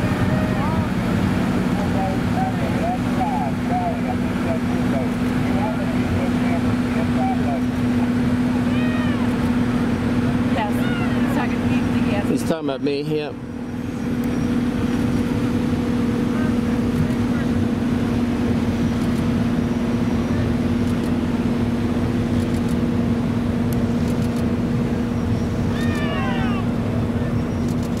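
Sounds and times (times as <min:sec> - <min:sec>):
boat engine humming: 0:00.0 - 0:28.0
water rushing: 0:00.0 - 0:28.0.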